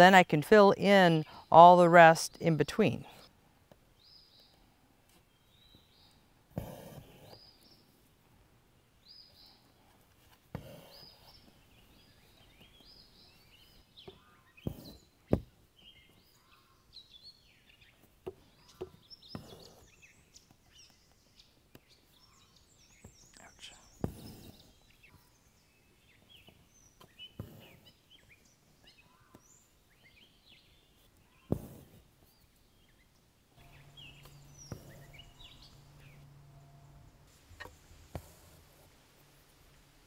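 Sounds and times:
songbirds chirping and singing: 0:10.8 - 0:31.6, 0:32.2 - 0:38.1
short sharp thumps: 0:31.5 - 0:32.0, 0:33.6 - 0:38.9.

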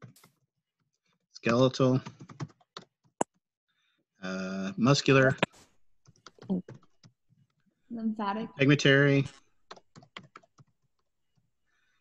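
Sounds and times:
computer keyboard typing: 0:02.0 - 0:03.2, 0:09.7 - 0:11.1.

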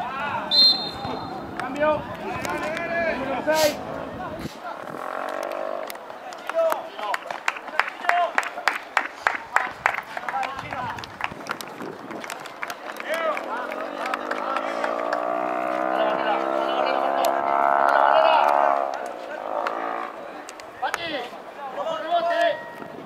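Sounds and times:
spectators' voices: 0:00.0 - 0:23.0.

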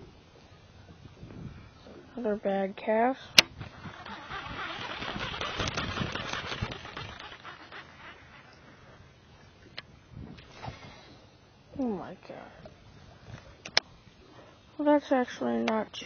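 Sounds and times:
fishing reel clicks: 0:03.4 - 0:08.6
fine ticking of line pulled off spool: 0:03.4 - 0:09.0.

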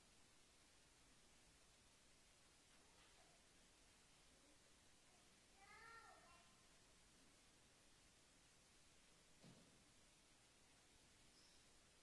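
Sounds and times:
faint pitched squeak: 0:11.3 - 0:11.8.

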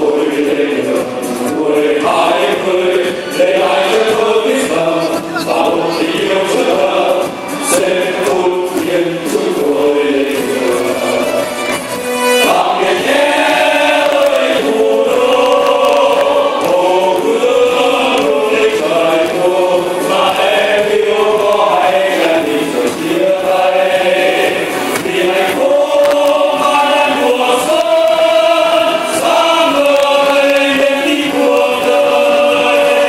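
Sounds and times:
choir singing: 0:00.0 - 0:33.0
musical accompaniment: 0:00.0 - 0:33.0.

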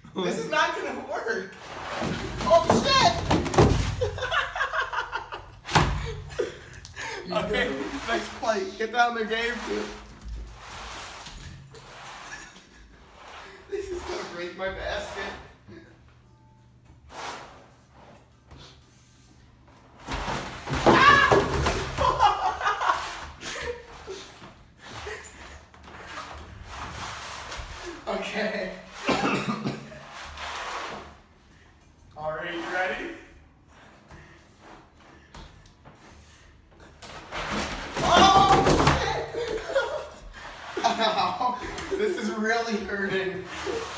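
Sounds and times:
basket clattering down stairs: 0:01.8 - 0:04.9, 0:20.0 - 0:23.8, 0:37.0 - 0:40.4.

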